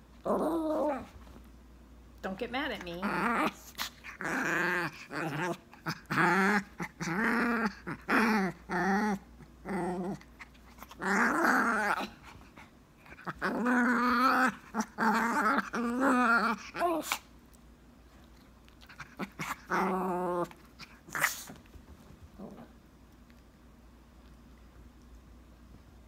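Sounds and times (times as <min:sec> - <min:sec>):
dog growling: 0:00.2 - 0:01.1, 0:03.0 - 0:17.2, 0:18.8 - 0:21.6, 0:22.4 - 0:22.8.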